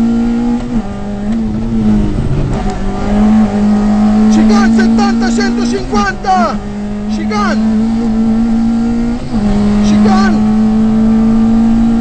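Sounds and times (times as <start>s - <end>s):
car engine at high revs: 0.0s - 12.0s.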